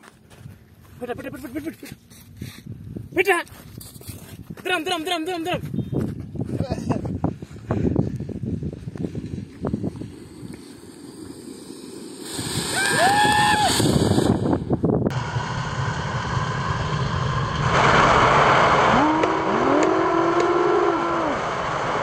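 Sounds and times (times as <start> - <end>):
firework fountain hissing: 9.2 - 22.0
long rising and falling calls: 11.9 - 13.9.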